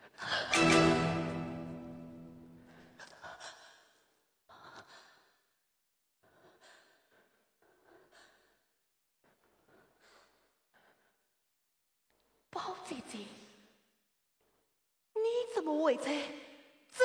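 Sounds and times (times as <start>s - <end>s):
held orchestral chord: 0.5s - 2.6s.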